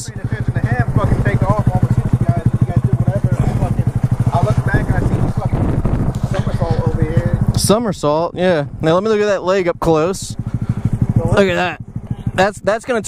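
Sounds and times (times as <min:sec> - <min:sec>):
motorcycle engine idling: 0:00.0 - 0:13.0.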